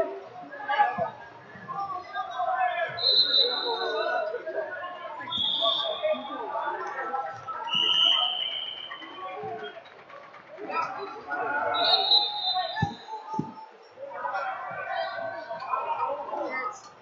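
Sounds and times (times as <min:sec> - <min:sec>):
spectators chattering: 0:00.0 - 0:17.0
referee whistle blasts: 0:03.0 - 0:04.0, 0:05.3 - 0:06.2, 0:07.7 - 0:09.2, 0:11.7 - 0:13.1.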